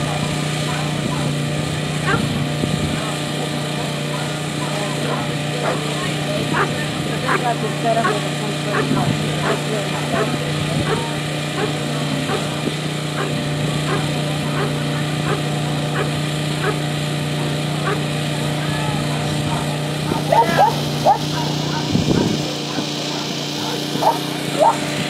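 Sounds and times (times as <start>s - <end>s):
dog barking: 2.0s - 2.3s, 5.0s - 12.5s, 13.2s - 16.8s, 17.4s - 18.1s, 19.1s - 24.8s
dog yelping: 2.0s - 2.3s, 5.1s - 5.9s, 6.5s - 12.5s, 13.2s - 16.8s, 17.4s - 18.1s, 19.1s - 24.8s.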